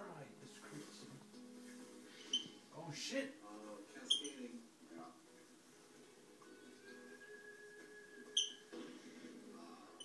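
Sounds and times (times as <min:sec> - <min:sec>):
faint steady background tones: 0:00.0 - 0:10.0
bird chirp: 0:08.3 - 0:08.7.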